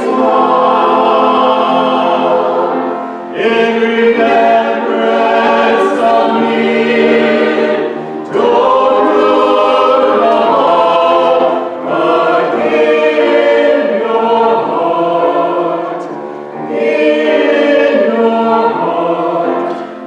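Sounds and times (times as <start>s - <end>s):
mixed choir singing: 0.0s - 20.0s.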